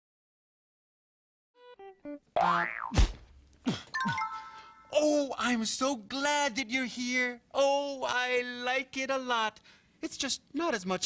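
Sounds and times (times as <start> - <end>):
springy boing: 2.4 - 3.1
descending cartoon notes: 4.0 - 5.2.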